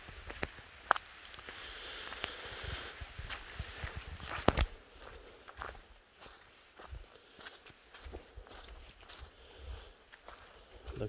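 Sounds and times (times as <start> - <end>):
footsteps on forest path: 0.0 - 11.0.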